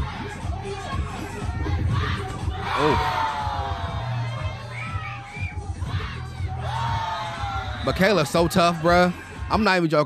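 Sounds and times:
bass-heavy music beat: 0.0 - 10.0
crowd of children shouting and cheering: 0.0 - 10.0.

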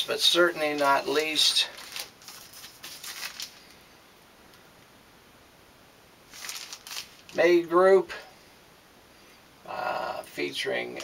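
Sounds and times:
plastic sleeve rustling and crinkling: 0.0 - 3.9, 6.3 - 7.5.

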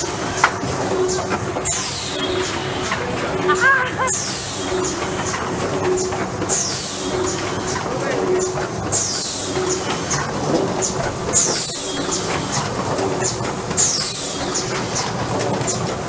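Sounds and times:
machine clicks and clatter: 0.0 - 3.5, 4.2 - 16.0
steady mechanical hum: 0.0 - 16.0.

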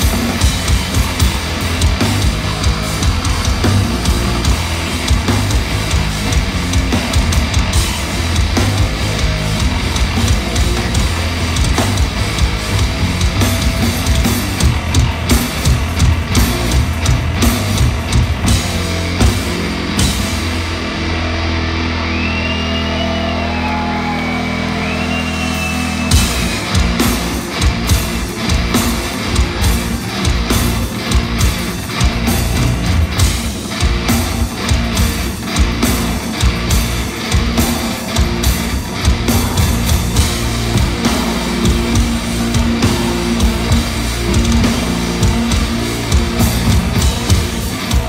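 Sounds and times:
drums crashing: 0.0 - 21.5, 24.8 - 48.0
bass guitar low notes: 0.0 - 48.0
distorted electric guitar: 0.0 - 48.0
heavy metal band playing live: 0.0 - 48.0
held guitar and bass chord: 18.4 - 22.6.

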